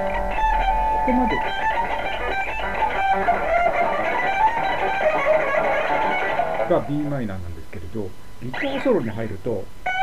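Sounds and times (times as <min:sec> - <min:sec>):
electric guitar fast lead phrase: 0:00.0 - 0:07.0.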